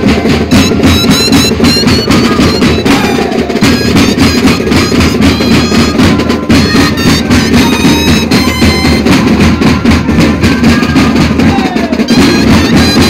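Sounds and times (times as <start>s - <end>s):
drums beating steady rhythm: 0.0s - 13.0s
flutes playing wavering melody: 0.5s - 13.0s.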